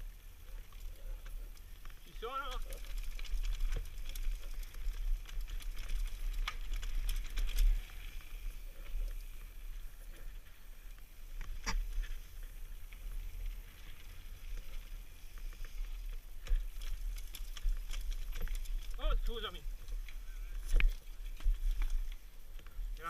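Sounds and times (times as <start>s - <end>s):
mountain bike rattling: 0.0s - 23.0s.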